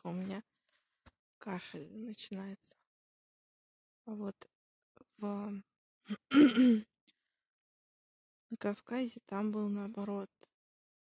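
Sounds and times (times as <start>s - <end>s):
woman coughing: 6.1s - 6.8s.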